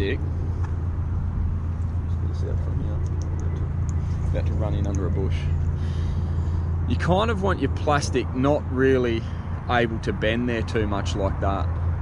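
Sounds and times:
boat motor humming: 0:00.0 - 0:10.4.

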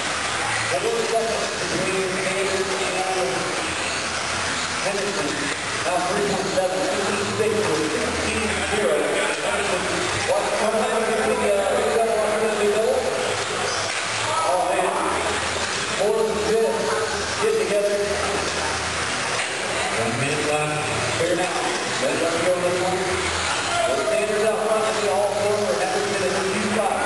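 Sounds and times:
indistinct echoing voice: 0:00.0 - 0:27.0.

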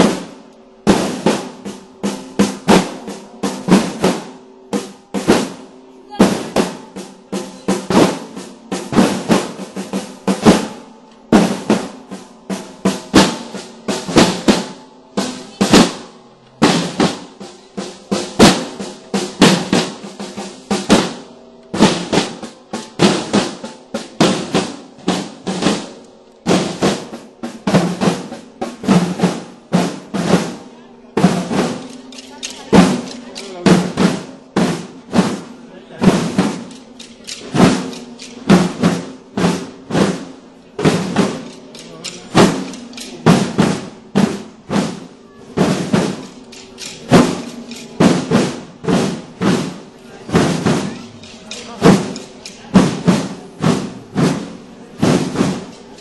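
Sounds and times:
drum band playing a march: 0:00.0 - 0:56.0.

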